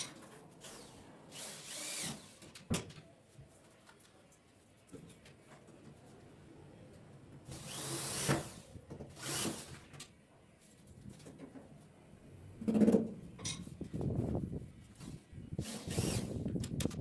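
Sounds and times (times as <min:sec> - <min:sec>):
power drill driving screws into wood: 0:00.6 - 0:02.4, 0:07.5 - 0:09.8, 0:15.6 - 0:16.4.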